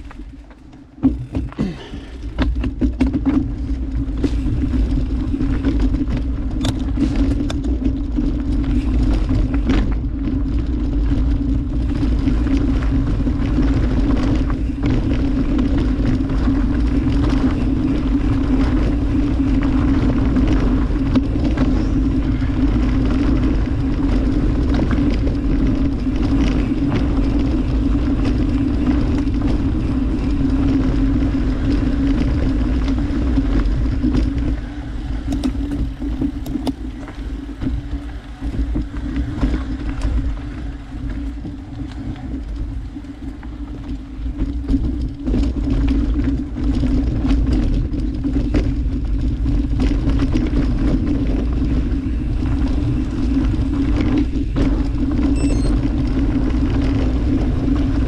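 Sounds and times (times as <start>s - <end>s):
bike clicks and rattles: 0.0s - 58.0s
bike tyre rumble on dirt: 0.0s - 58.0s
wind on microphone: 0.0s - 58.0s.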